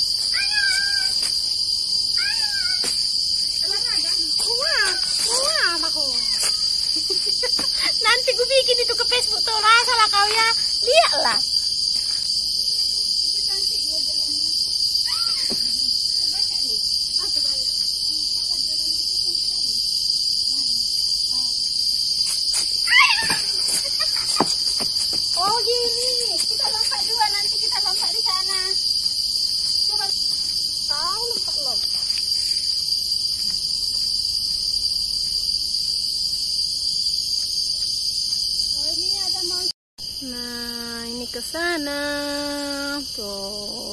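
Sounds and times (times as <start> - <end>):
high-pitched insect chorus: 0.0 - 43.9.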